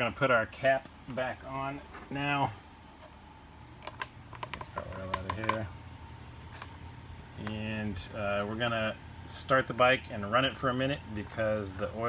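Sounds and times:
plastic funnel clicking and knocking: 3.8 - 5.6.

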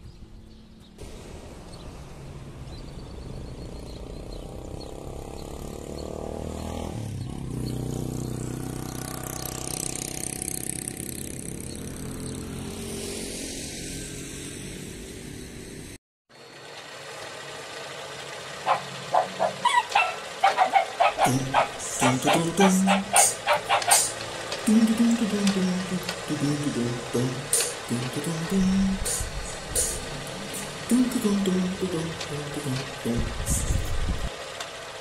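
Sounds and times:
vehicle engine running and passing: 0.1 - 35.0
sharp rhythmic hits: 18.7 - 33.1.

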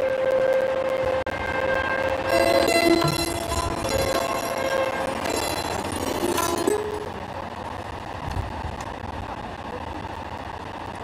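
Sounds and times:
horn-like tones in a chord: 1.6 - 7.1.

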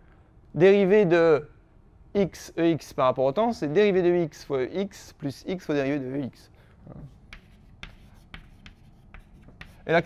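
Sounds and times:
chalk tapping and scratching: 7.0 - 10.0.

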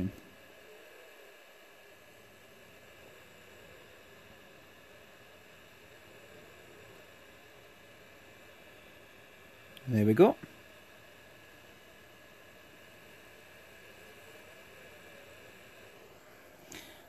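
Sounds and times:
hot air gun hissing: 12.2 - 17.0.

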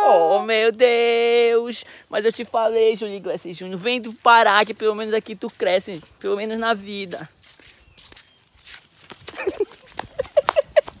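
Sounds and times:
man laughing: 9.3 - 11.0.

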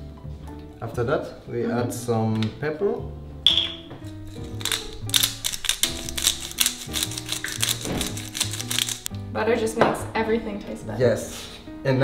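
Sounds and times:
background music: 0.0 - 12.0
pepper mill grinding: 3.6 - 9.1.

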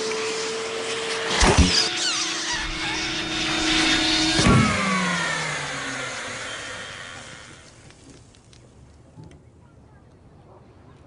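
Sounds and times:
vacuum cleaner humming: 0.0 - 8.2
vacuum cleaner clunk: 1.1 - 7.6.

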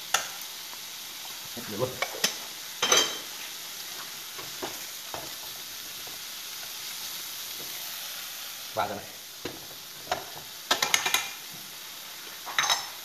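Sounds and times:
shrimp sizzling in a frying pan: 0.0 - 13.0
utensils tapping and clinking: 10.1 - 11.4, 12.5 - 13.0.

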